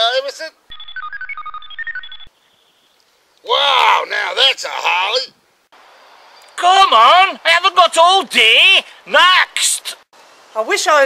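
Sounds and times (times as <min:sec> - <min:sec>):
short computer-like beeps: 0:00.7 - 0:02.3.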